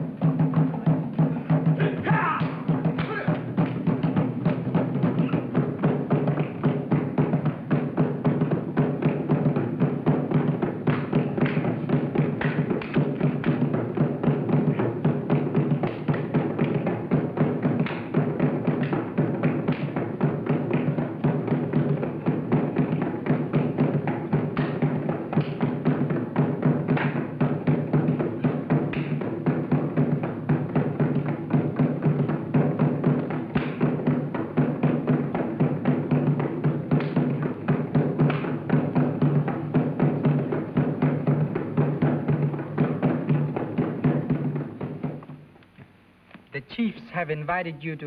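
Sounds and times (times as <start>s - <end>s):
drum-led dance music: 46.6s - 48.0s.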